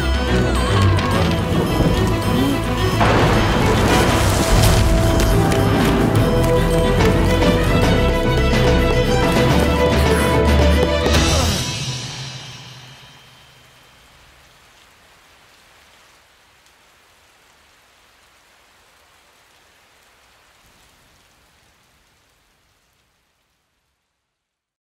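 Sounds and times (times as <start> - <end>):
music ringing out: 0.0 - 13.4
faint hiss with crackle: 12.4 - 24.7.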